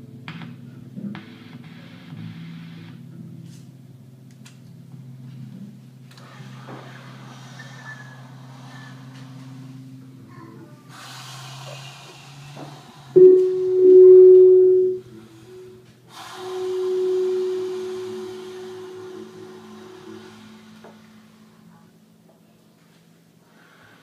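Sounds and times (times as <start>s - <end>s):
hiss: 6.2s - 13.2s, 16.1s - 21.8s
low steady drone: 8.3s - 22.0s
saxophone long notes: 13.2s - 15.7s, 16.3s - 19.3s.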